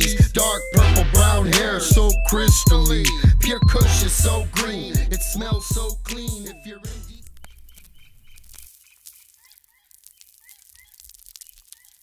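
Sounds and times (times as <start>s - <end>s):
hip-hop track: 0.0s - 7.4s.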